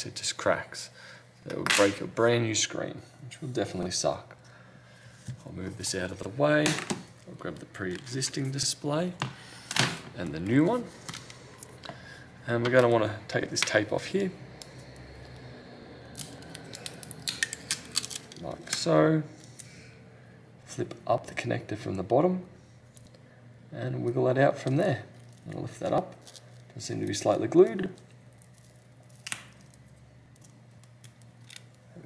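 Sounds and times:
faint low hum: 0:00.0 - 0:32.0.

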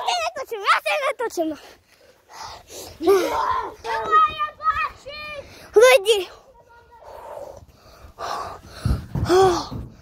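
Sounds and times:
child speaking: 0:00.0 - 0:01.7, 0:03.0 - 0:07.5.

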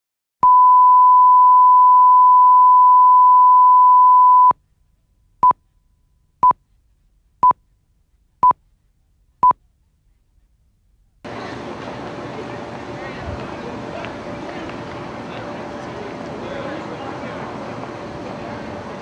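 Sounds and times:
steady test tone beep: 0:00.4 - 0:04.6.

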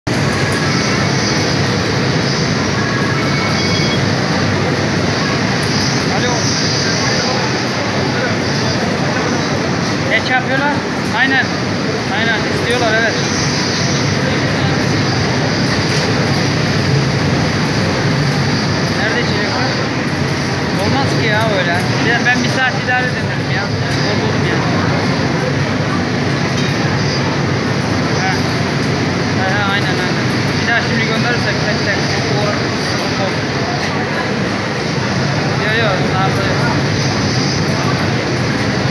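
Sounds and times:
rushing hum of machinery: 0:00.0 - 0:38.9
voices: 0:00.1 - 0:38.9.

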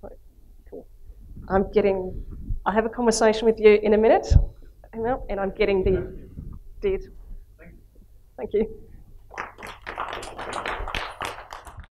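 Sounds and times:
audience applauding: 0:09.3 - 0:11.9.

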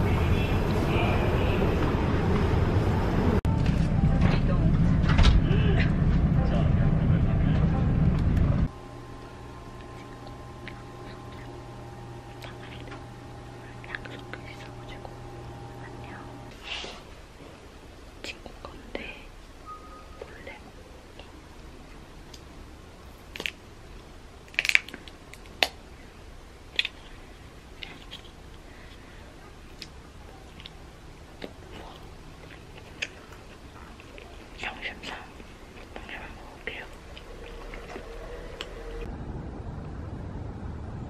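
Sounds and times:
woman whispering: 0:09.8 - 0:16.5, 0:18.2 - 0:19.4, 0:20.2 - 0:21.4, 0:31.6 - 0:32.1, 0:34.2 - 0:37.1.

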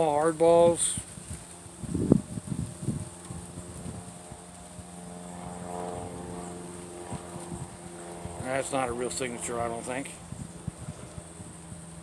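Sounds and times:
distant engine drone: 0:00.0 - 0:12.0
high insect buzz: 0:01.0 - 0:12.0.

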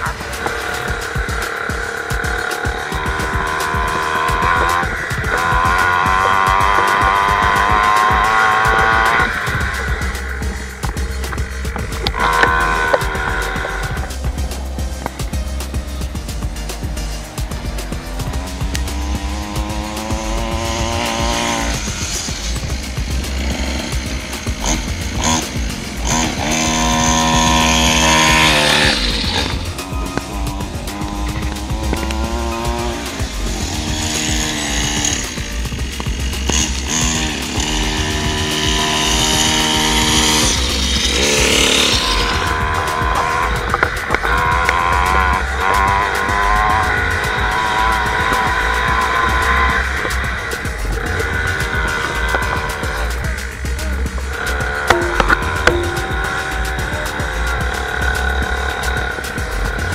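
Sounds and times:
background music: 0:00.0 - 0:59.9
small dirt bike engine revving: 0:00.0 - 0:59.9.

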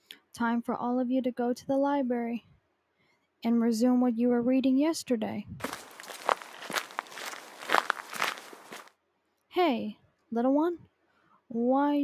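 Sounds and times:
footsteps outdoors: 0:05.6 - 0:08.9.

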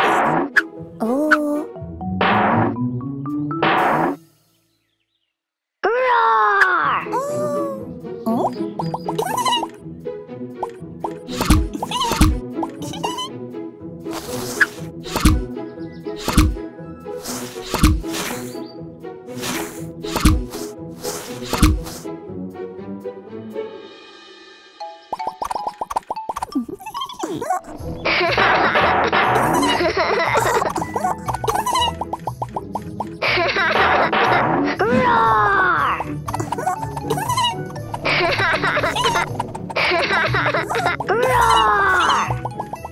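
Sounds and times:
playful cartoon music: 0:00.0 - 0:04.5, 0:06.0 - 0:42.9
pitched blips and plops: 0:08.4 - 0:09.7, 0:10.6 - 0:13.2, 0:25.1 - 0:27.4, 0:30.4 - 0:33.2, 0:36.0 - 0:41.4, 0:42.0 - 0:42.9
squeaky sliding sounds: 0:09.0 - 0:09.8, 0:10.6 - 0:13.3, 0:14.1 - 0:15.4, 0:17.2 - 0:18.6, 0:19.4 - 0:22.0, 0:30.4 - 0:33.2, 0:36.3 - 0:38.1.

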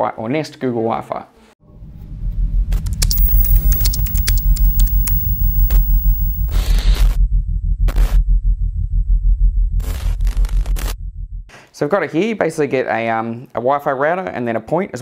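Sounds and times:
sharp digital clicks: 0:03.0 - 0:06.6
bursts of static: 0:03.1 - 0:06.6
pulsing bass hum: 0:03.1 - 0:06.6.

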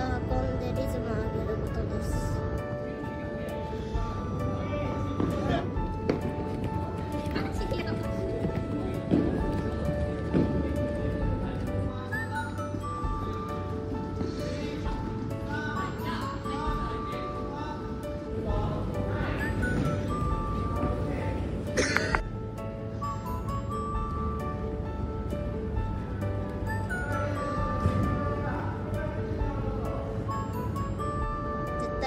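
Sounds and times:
music with held notes: 0:00.0 - 0:32.0.

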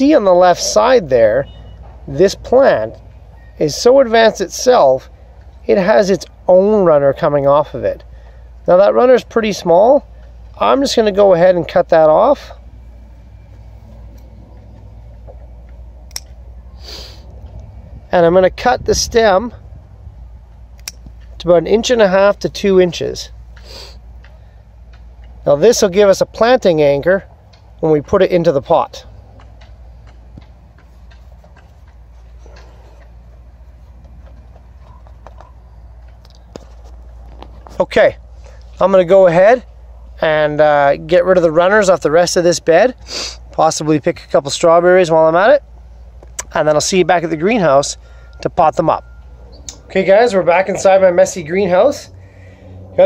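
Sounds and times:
steady low rumble: 0:12.5 - 0:25.6
scissors snipping click: 0:16.1 - 0:16.4, 0:20.8 - 0:21.1.

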